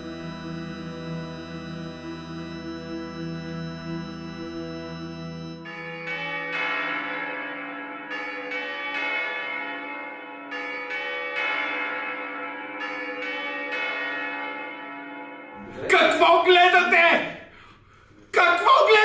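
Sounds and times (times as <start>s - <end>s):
low drone: 0.0s - 5.7s
church bells ringing: 0.0s - 17.5s, 18.4s - 19.0s.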